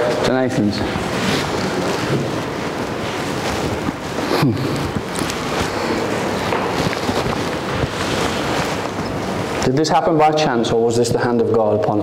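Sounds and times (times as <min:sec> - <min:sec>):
steady rushing wind noise: 0:00.7 - 0:09.7.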